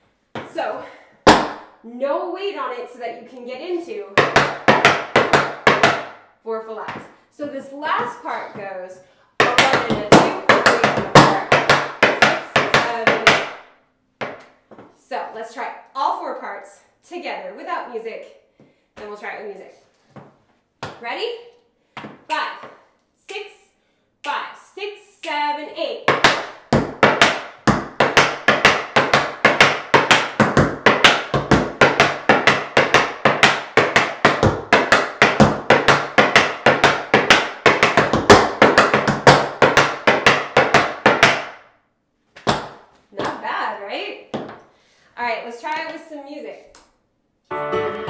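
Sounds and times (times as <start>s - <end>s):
tap shoes on wooden board: 0.4s - 0.6s, 1.3s - 1.6s, 4.2s - 6.2s, 9.4s - 13.6s, 14.2s - 14.9s, 20.1s - 21.0s, 22.0s - 22.8s, 26.1s - 41.6s, 42.4s - 43.4s, 44.3s - 44.6s.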